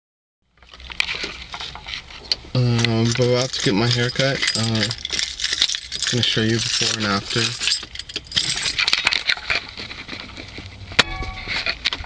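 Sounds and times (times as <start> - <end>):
light rattling and rustling: 0.6 - 12.0
brief ringing tone: 11.0 - 11.6.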